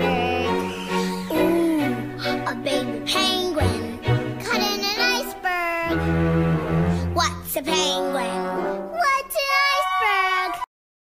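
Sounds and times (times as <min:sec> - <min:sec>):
high-pitched voice singing: 0:00.0 - 0:06.0, 0:09.0 - 0:10.7.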